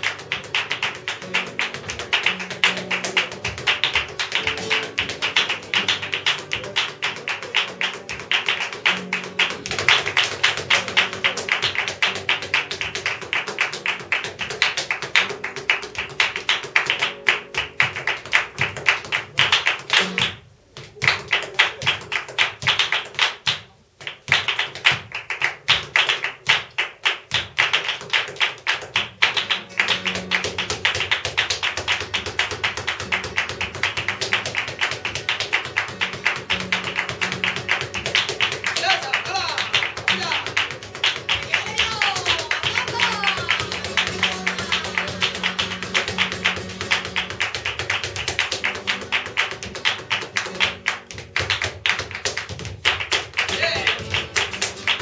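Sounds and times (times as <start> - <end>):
dancer's rapid heel stamping: 0.0 - 55.0
hand clapping: 0.0 - 55.0.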